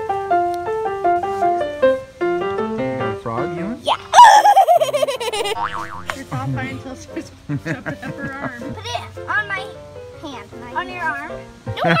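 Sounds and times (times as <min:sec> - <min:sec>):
cartoon boing: 0:05.4 - 0:06.2.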